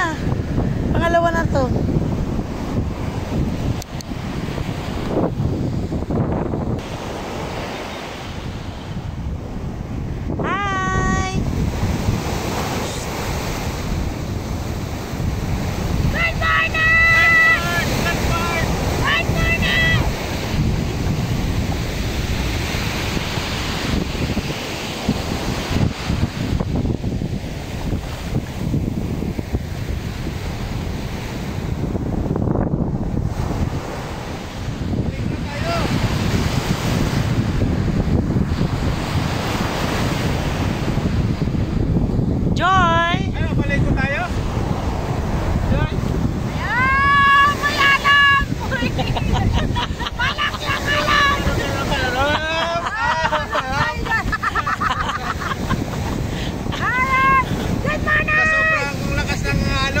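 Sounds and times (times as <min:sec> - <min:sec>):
surf washing onto beach: 0:00.0 - 1:00.0
wind buffeting microphone: 0:00.0 - 1:00.0.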